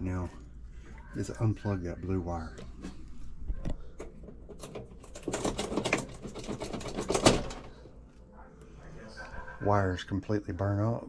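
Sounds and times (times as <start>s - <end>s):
clicks and rattles of handling wiring: 2.6s - 7.9s.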